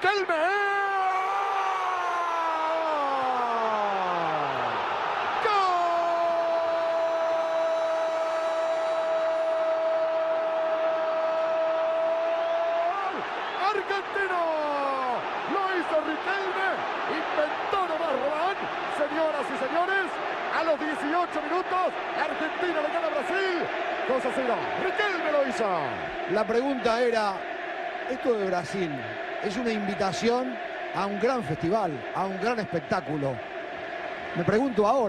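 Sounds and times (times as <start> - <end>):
stadium crowd noise: 0.0 - 35.0.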